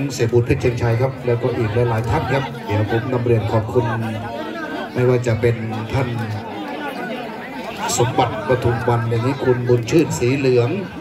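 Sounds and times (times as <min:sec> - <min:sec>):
man talking loudly: 0:00.0 - 0:06.5, 0:07.8 - 0:11.0
crowd chatter: 0:00.0 - 0:11.0.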